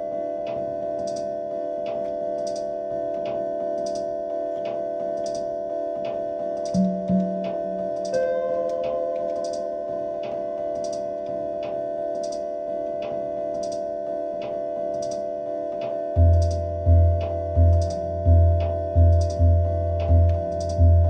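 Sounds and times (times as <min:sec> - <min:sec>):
synth drone of held tones: 0:00.0 - 0:21.0
ticking click pulse: 0:00.4 - 0:13.8, 0:14.4 - 0:20.9
low pitched hits: 0:06.8 - 0:08.0, 0:16.2 - 0:21.0
higher held synth note: 0:06.8 - 0:10.4.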